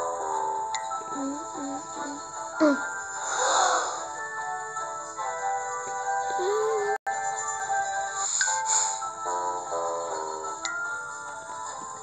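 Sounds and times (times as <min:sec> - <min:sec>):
gentle synthesized music: 0:00.0 - 0:12.0.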